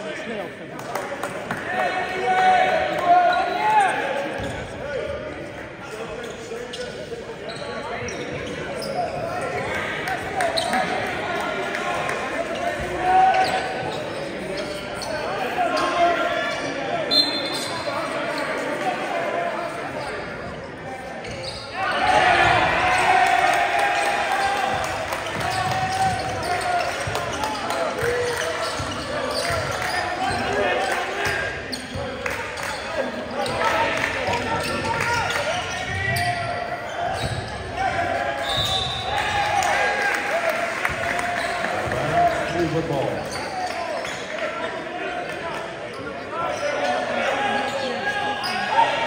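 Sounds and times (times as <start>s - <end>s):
voices echoing in gym: 0.0s - 49.0s.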